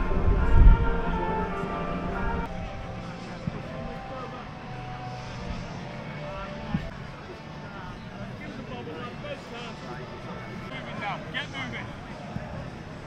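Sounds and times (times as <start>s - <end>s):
background music: 0.0s - 13.0s
faint indistinct voices: 0.0s - 13.0s.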